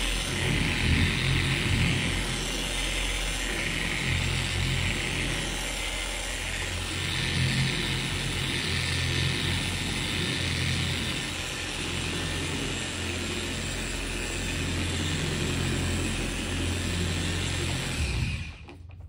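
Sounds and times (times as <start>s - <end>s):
polisher humming: 0.0s - 19.0s.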